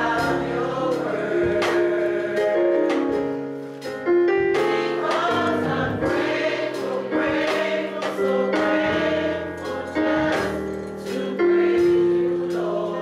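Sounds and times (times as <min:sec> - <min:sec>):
gospel choir singing in harmony: 0:00.0 - 0:13.0.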